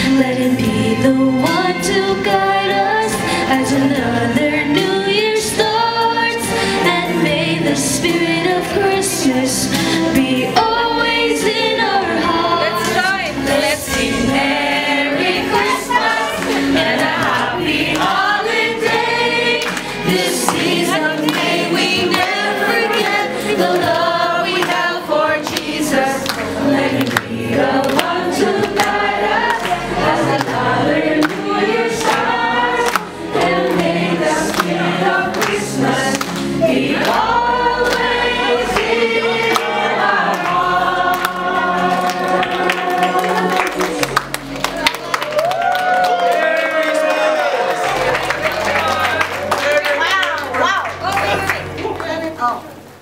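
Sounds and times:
voices singing together: 0.0s - 51.8s
music: 0.0s - 53.0s.

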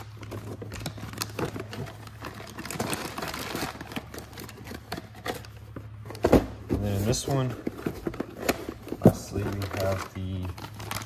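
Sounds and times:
plastic bags crinkling: 0.0s - 6.0s, 6.8s - 11.0s.

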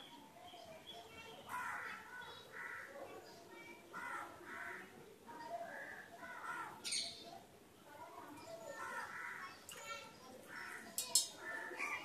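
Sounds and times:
crows cawing: 1.5s - 3.0s, 4.0s - 4.9s, 5.7s - 6.8s, 8.8s - 9.6s, 10.5s - 12.0s.

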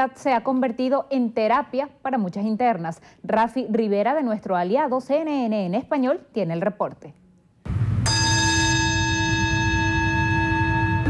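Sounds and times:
low rumble: 7.7s - 10.0s
bell ringing: 8.0s - 11.0s.

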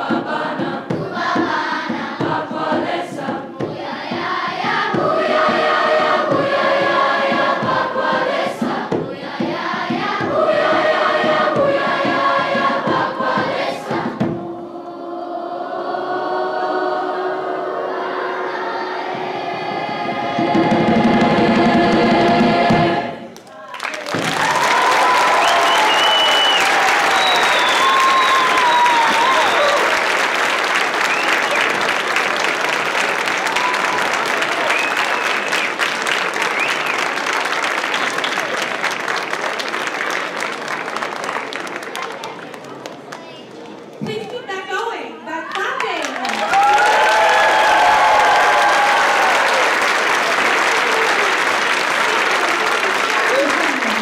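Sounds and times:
mixed choir singing: 0.0s - 23.6s, 24.4s - 37.9s, 47.0s - 53.3s
audience applause and cheers: 23.4s - 43.4s, 45.8s - 54.0s.

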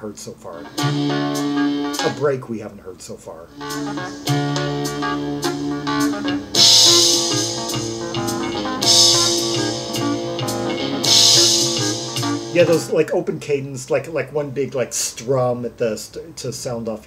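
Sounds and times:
sustained keyboard and bass: 0.5s - 2.4s, 3.5s - 13.1s
accented guitar strums: 0.6s - 2.3s, 3.6s - 13.0s.

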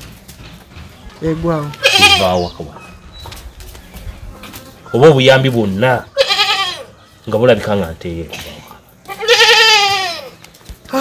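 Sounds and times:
farm animal bleating: 1.6s - 2.6s, 4.3s - 7.0s, 9.0s - 10.4s.

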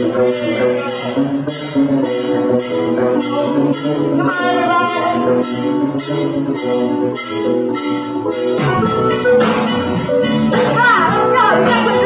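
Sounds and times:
bass guitar: 0.0s - 12.0s
drum kit: 0.0s - 12.0s
electric guitar chords: 0.0s - 12.0s.

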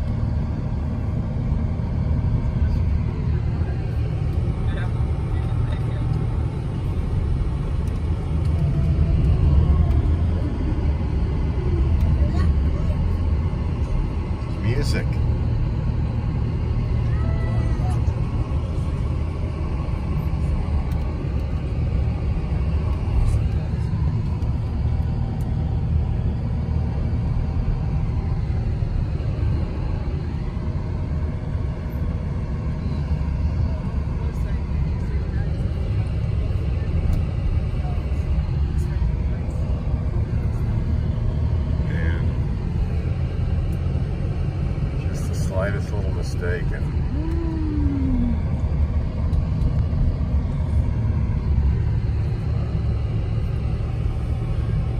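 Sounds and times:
car road and engine rumble: 0.0s - 54.9s.

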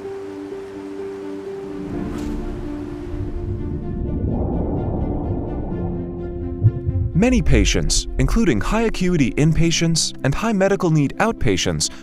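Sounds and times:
steady rushing noise: 5.3s - 9.5s.

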